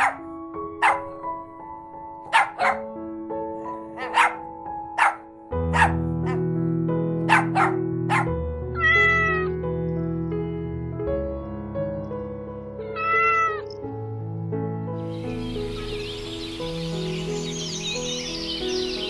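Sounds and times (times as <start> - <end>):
background music: 0.0 - 19.0
cat meowing: 8.7 - 9.6, 13.0 - 13.8.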